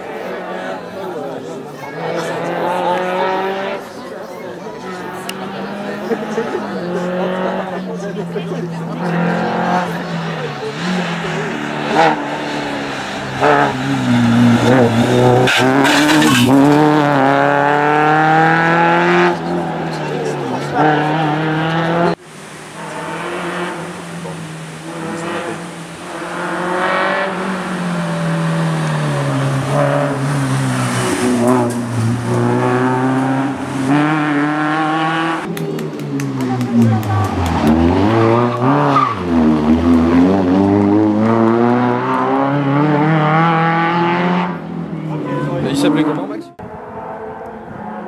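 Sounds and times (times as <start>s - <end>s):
rally car engine revving: 0.0s - 48.0s.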